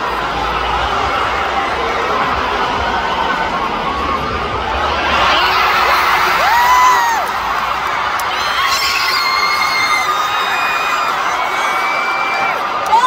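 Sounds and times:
crowd cheering and screaming: 0:00.0 - 0:13.0
long high held screams: 0:08.2 - 0:12.6.

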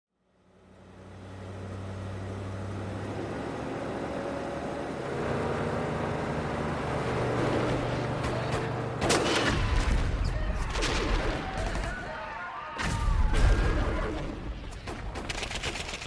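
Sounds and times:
vehicle engine drone: 0:00.1 - 0:12.0.

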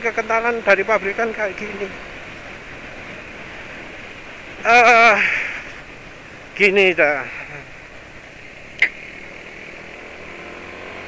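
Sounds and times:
sharp click: 0:08.8 - 0:09.0.

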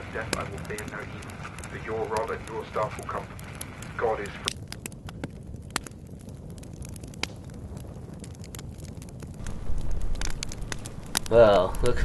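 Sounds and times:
campfire crackling and popping: 0:00.0 - 0:12.0
wind rumble on microphone: 0:00.0 - 0:12.0.

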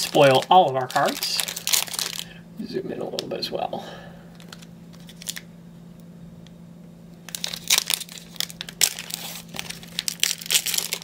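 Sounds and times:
foil wrapper crinkling and tearing: 0:00.0 - 0:02.4, 0:04.4 - 0:05.5, 0:07.2 - 0:11.0.

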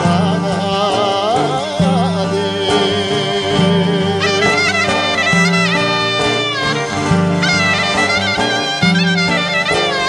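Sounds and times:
string accompaniment: 0:00.0 - 0:10.0
clarinet melody: 0:02.6 - 0:10.0.

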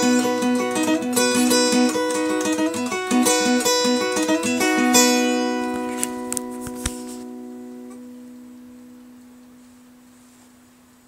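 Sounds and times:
guitar note ringing: 0:00.0 - 0:09.5.

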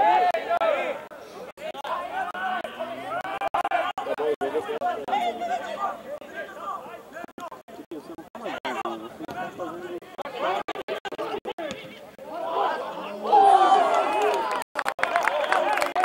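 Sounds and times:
people chatting: 0:00.4 - 0:14.4.

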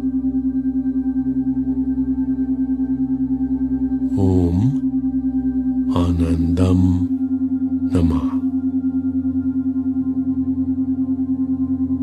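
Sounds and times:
sustained meditation tone: 0:00.0 - 0:12.0
low voice chanting: 0:04.0 - 0:04.9, 0:05.9 - 0:08.6.

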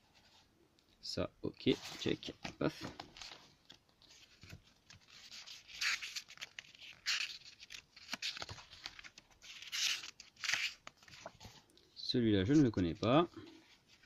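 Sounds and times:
book pages turning: 0:01.6 - 0:11.7, 0:12.4 - 0:14.0.

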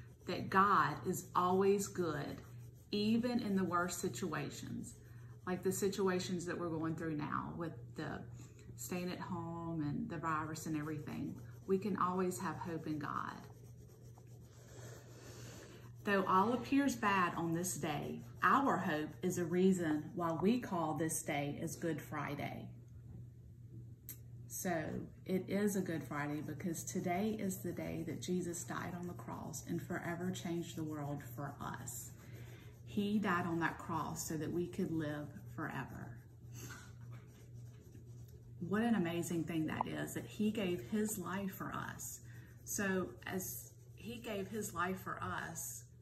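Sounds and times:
paper scratching on table: 0:00.0 - 0:07.2, 0:10.0 - 0:20.2, 0:25.7 - 0:45.0
steady low hum: 0:00.0 - 0:46.0.

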